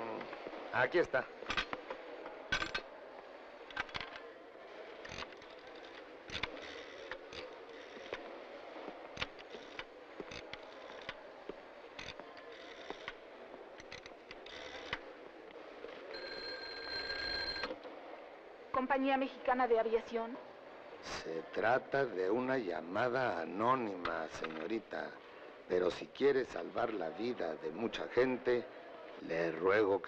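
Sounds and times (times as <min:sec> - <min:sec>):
low background murmur: 0:00.0 - 0:30.0
telephone bell ringing: 0:16.1 - 0:17.8.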